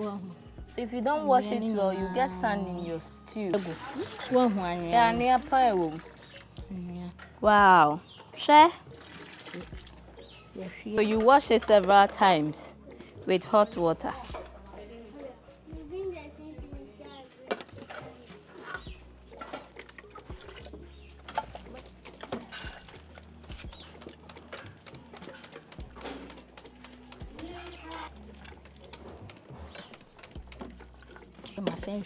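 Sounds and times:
water draining and splashing: 3.5s - 6.7s, 8.8s - 10.2s, 19.3s - 32.0s.

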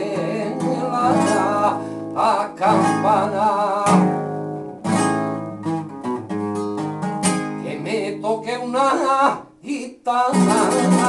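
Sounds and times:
flamenco acoustic guitar strumming: 0.0s - 11.0s.

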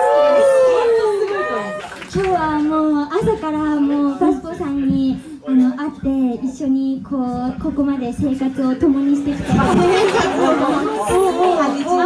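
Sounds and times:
women talking through microphones: 0.7s - 12.0s.

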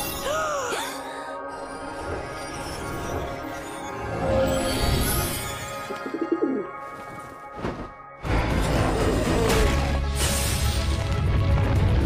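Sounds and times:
soft background music: 0.0s - 11.5s.

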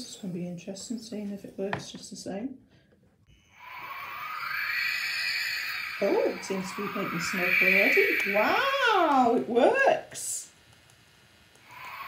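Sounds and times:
rising motor whine: 3.4s - 9.4s, 11.6s - 12.0s
small fan motor whirring: 3.4s - 10.0s, 10.8s - 12.0s.

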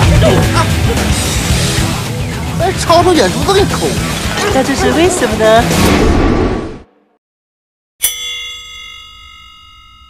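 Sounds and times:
bell-like metallic strike ringing: 8.0s - 10.0s.

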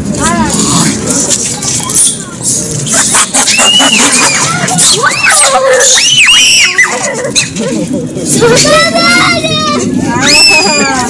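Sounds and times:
shrill screams: 3.5s - 7.1s, 9.2s - 11.0s.

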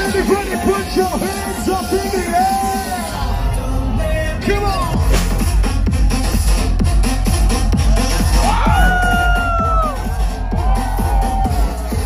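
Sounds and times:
crowd cheering: 0.0s - 4.0s, 5.1s - 12.0s
electronic dance music: 0.0s - 12.0s.

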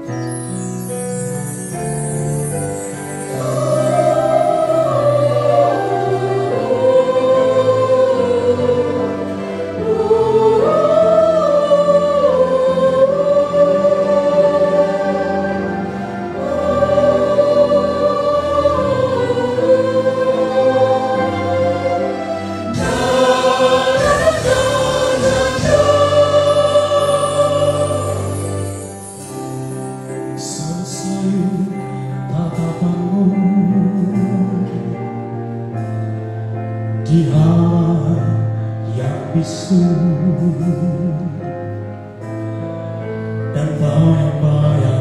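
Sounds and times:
choir singing long held notes: 0.2s - 32.4s.

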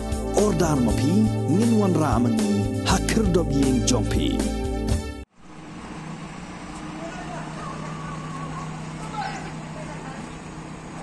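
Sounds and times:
vehicle engines idling: 5.4s - 11.0s
faint voices: 6.9s - 10.5s.

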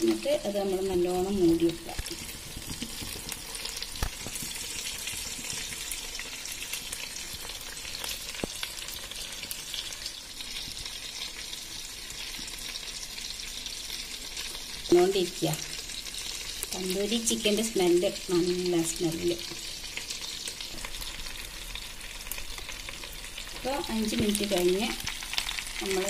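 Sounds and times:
chicken sizzling in a pan: 0.0s - 26.0s.

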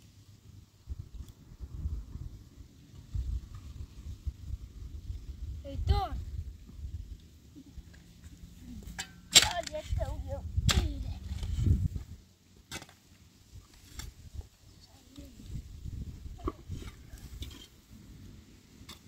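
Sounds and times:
shovel striking stony earth: 8.9s - 10.0s, 10.6s - 11.9s, 12.6s - 13.1s, 18.8s - 19.0s.

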